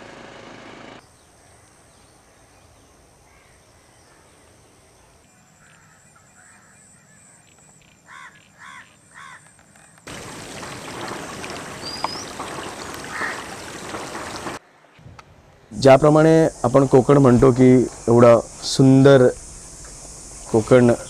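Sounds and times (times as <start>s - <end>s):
bird calling: 8.1s - 14.6s
outdoor hiss: 10.1s - 21.0s
high rising bird chirp: 11.0s - 13.4s.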